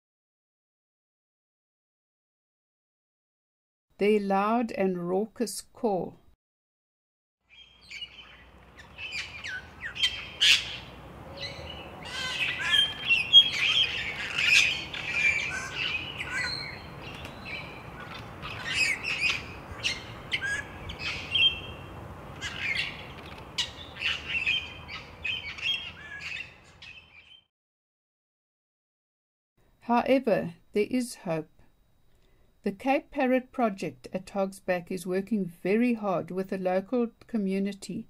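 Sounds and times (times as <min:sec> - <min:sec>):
parrots screeching: 0:07.5 - 0:21.8, 0:22.4 - 0:27.4.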